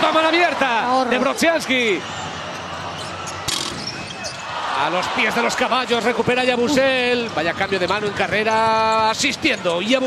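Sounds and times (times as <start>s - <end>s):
crowd noise in arena: 0.0s - 10.0s.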